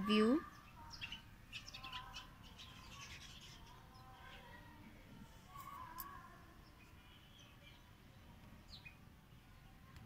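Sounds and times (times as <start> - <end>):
faint bird chirping: 0.0 - 10.0.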